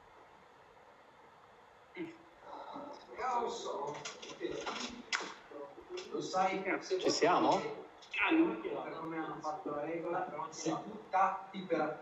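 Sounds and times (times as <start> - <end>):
person speaking: 2.0 - 12.0.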